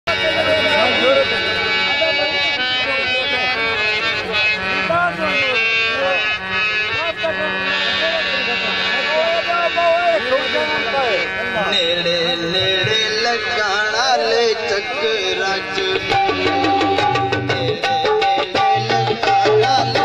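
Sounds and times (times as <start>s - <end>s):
harmonium chords over drone: 0.1s - 20.0s.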